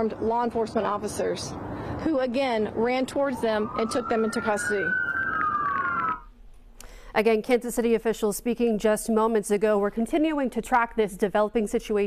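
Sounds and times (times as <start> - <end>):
emergency vehicle siren wailing: 2.7 - 6.3.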